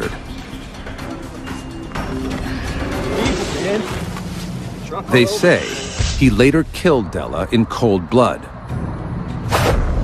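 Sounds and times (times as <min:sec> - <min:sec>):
dark background score: 0:00.0 - 0:10.0.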